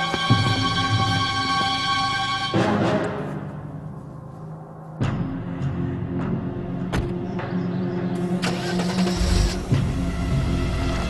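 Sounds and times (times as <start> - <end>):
car engine starting: 8.2 - 11.0.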